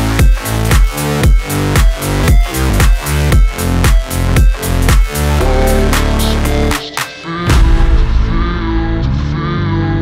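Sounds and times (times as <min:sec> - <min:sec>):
electronic music: 0:00.0 - 0:09.9.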